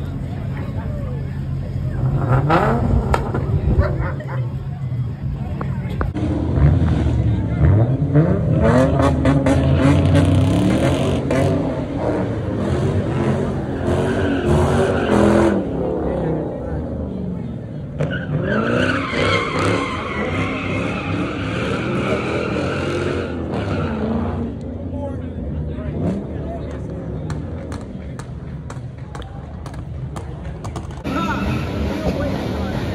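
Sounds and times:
car engine revving: 0.0 - 28.9
tires squealing: 0.0 - 32.9.

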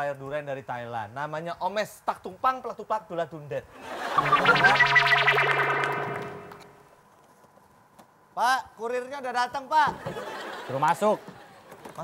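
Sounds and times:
short musical sting: 4.1 - 6.8.

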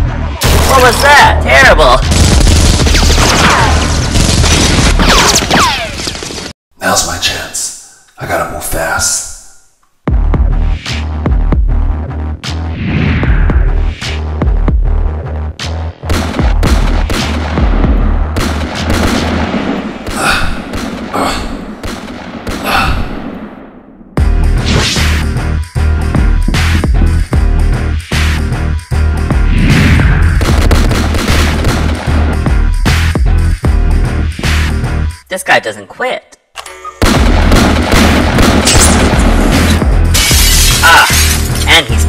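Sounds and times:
rapid pistol gunfire: 2.1 - 5.6, 16.1 - 17.8, 18.4 - 22.8, 30.4 - 32.2, 37.0 - 39.7.

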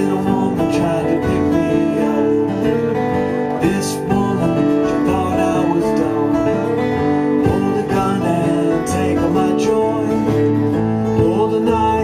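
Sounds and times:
acoustic guitars playing blues: 0.0 - 12.0.

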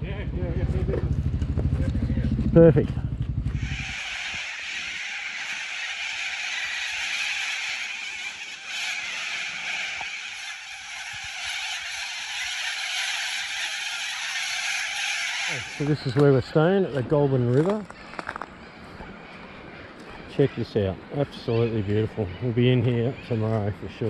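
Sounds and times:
motorcycle engine idling: 0.0 - 4.4
flock of cockatoos calling: 3.6 - 24.0.

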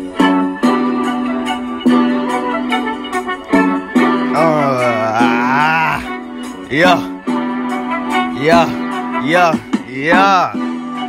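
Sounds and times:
hip-hop beat: 6.6 - 10.8.

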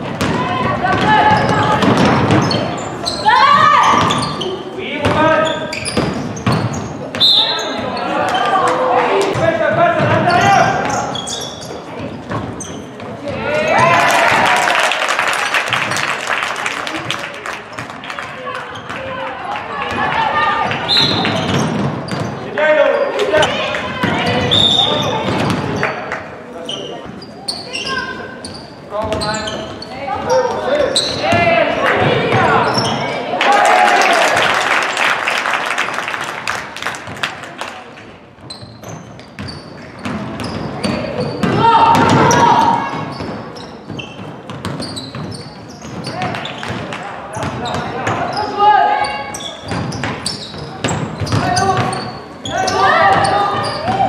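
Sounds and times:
basketball bouncing on court: 0.0 - 2.9, 3.5 - 7.2, 9.2 - 11.1, 19.8 - 22.5, 23.4 - 25.9, 28.4 - 33.2, 38.4 - 48.4, 49.6 - 54.0
people shouting: 3.2 - 4.2, 13.4 - 14.9, 41.5 - 43.0, 52.5 - 54.0.

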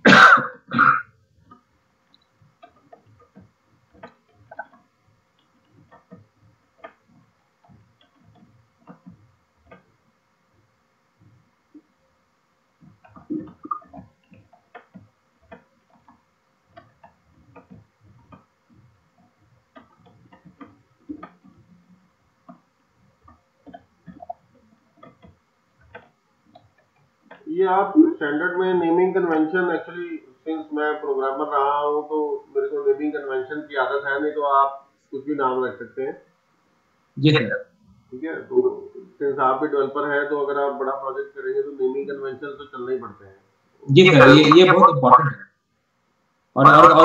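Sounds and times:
faint scattered ticks: 0.0 - 47.0
man coughing: 0.1 - 1.1
computer keyboard typing: 12.8 - 21.8.

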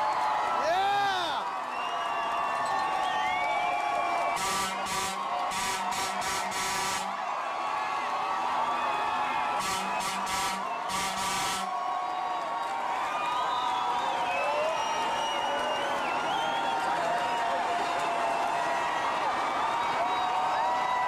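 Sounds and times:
crowd cheering and shouting: 0.0 - 21.0.

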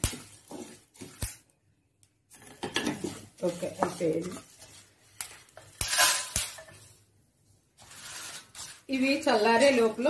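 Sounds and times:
spatula stirring spices in metal pan: 0.0 - 1.4, 2.3 - 10.0.

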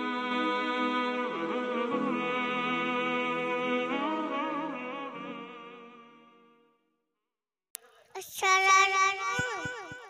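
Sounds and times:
girl singing into a microphone: 8.2 - 10.0.

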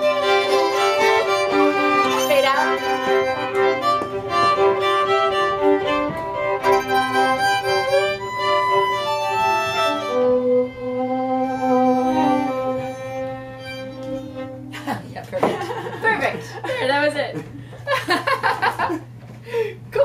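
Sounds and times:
fiddles playing a tune: 0.0 - 14.8.

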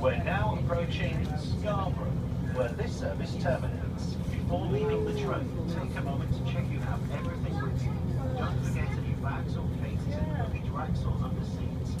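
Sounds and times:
train low rumble: 0.0 - 12.0.

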